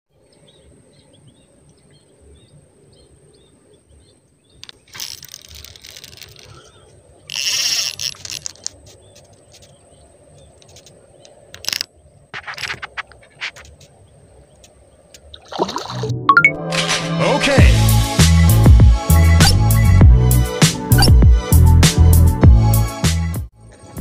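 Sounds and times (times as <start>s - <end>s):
reel clicks: 4.6s - 14.0s
rod and reel rustling: 4.6s - 15.5s.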